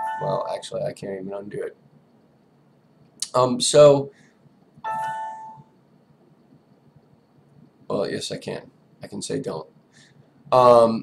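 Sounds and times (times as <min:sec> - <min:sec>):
system alert chime: 0:00.0 - 0:00.6, 0:04.8 - 0:05.7.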